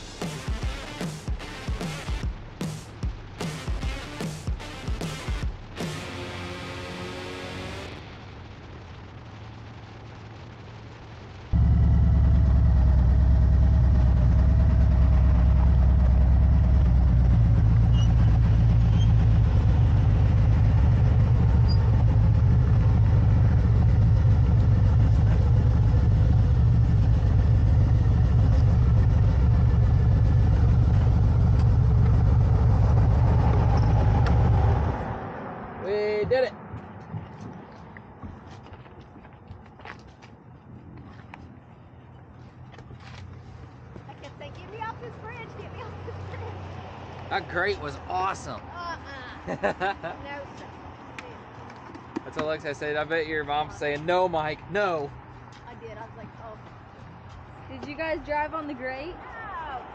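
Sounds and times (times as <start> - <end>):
music: 0.0 - 8.0
motorcycle engine rumbling: 0.0 - 39.6.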